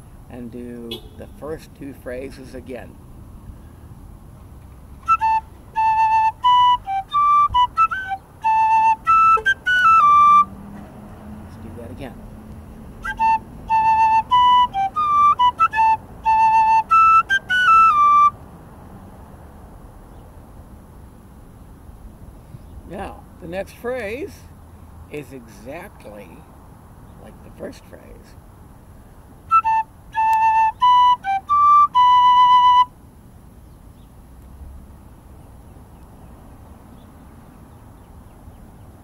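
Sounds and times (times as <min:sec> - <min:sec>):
tin whistle playing: 0:05.0 - 0:10.6, 0:13.0 - 0:18.4, 0:29.5 - 0:33.0.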